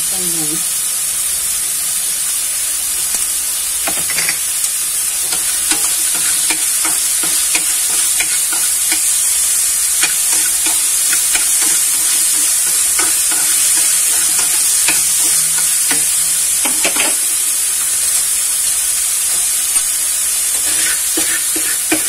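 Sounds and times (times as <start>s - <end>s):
meat sizzling in a frying pan: 0.0s - 22.0s
chopsticks tapping and scraping pan: 3.8s - 4.5s, 5.2s - 17.3s, 20.5s - 22.0s.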